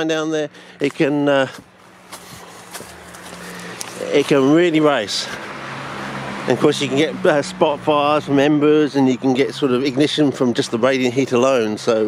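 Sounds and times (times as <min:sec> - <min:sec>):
car approaching: 0:00.0 - 0:12.0
footsteps on dry ground: 0:00.8 - 0:05.7.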